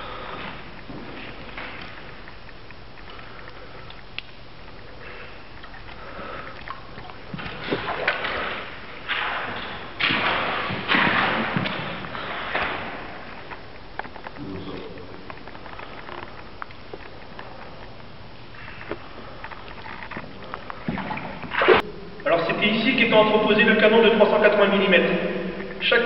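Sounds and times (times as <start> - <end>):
splashes in shallow water: 5.6 - 13.1.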